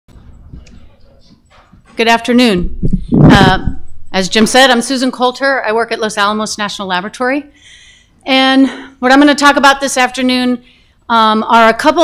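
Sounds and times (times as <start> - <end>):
low rumble: 2.6 - 4.4.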